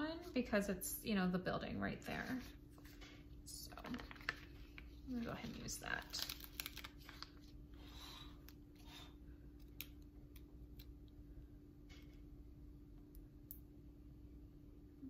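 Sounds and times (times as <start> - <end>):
low steady hum: 0.0 - 15.0
paper rustling: 2.2 - 7.6
sticker being peeled: 6.0 - 7.4.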